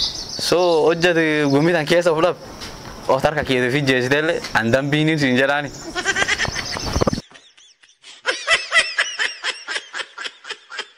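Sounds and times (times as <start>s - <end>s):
person giggling: 5.9s - 10.9s.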